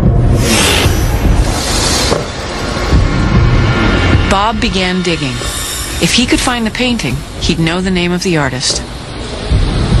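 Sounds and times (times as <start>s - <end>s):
loud pulsing rumble: 0.0s - 10.0s.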